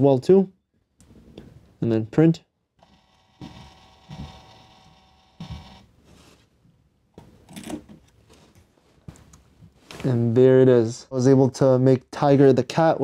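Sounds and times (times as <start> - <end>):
label printer motor whine: 2.8 - 5.9.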